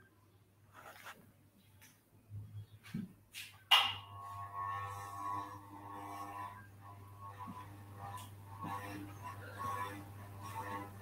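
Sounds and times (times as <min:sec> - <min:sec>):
low steady hum: 0:03.7 - 0:11.0.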